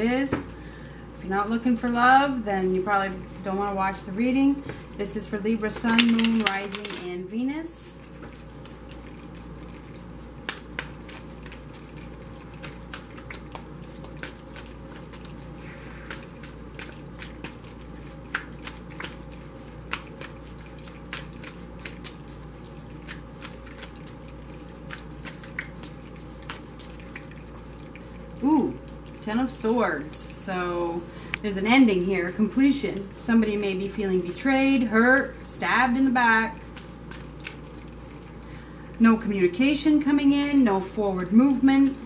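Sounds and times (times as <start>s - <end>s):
woman speaking: 0.0s - 0.5s, 1.2s - 8.0s, 28.4s - 36.6s, 39.0s - 42.0s.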